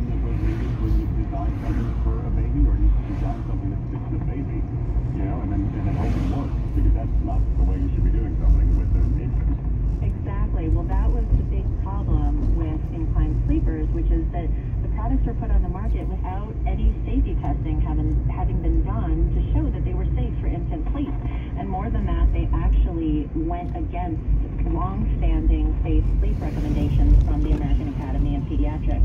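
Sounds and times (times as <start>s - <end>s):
car driving rumble: 0.0s - 29.0s
indistinct voices: 0.0s - 29.0s.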